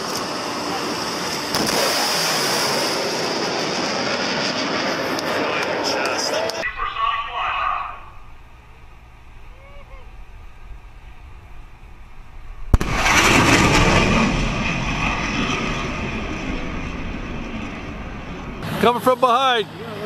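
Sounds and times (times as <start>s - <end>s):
jet roar: 0.0s - 20.0s
sonic boom crack: 6.6s - 18.6s.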